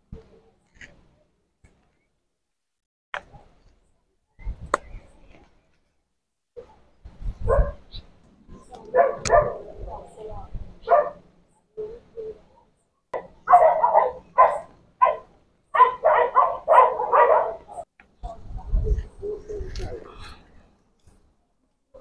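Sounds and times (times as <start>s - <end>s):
dog barking: 7.4s - 7.8s, 8.8s - 9.8s, 10.8s - 11.2s, 13.1s - 17.9s.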